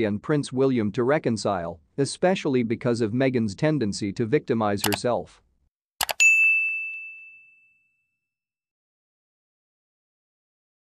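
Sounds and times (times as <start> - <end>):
notification bell ding: 6.0 - 8.3.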